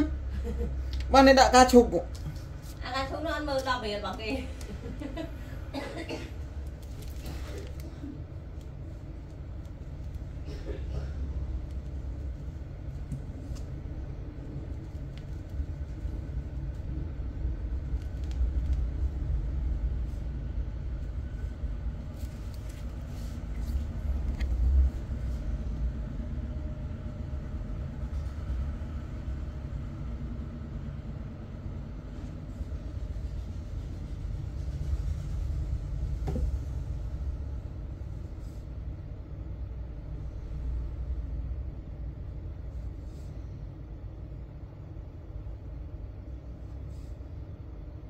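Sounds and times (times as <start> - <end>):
low background rumble: 0.0 - 48.0.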